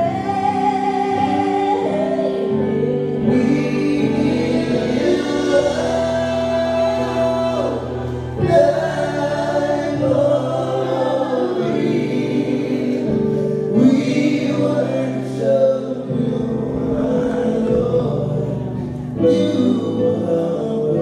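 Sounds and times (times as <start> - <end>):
backing voices singing: 0.0 - 21.0
held keyboard chords: 0.0 - 21.0
man singing lead: 0.0 - 21.0.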